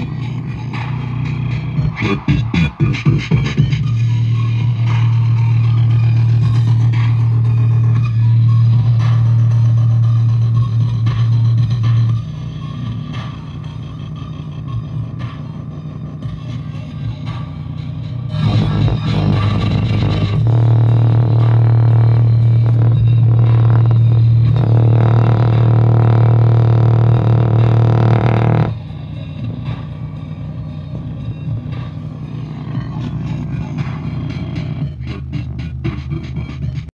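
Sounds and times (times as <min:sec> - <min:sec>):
low bass tone from car speaker: 0:00.0 - 0:36.9.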